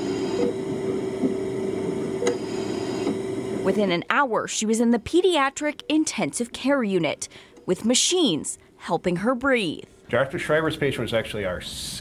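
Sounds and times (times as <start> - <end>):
medical equipment humming: 0.0 - 12.0.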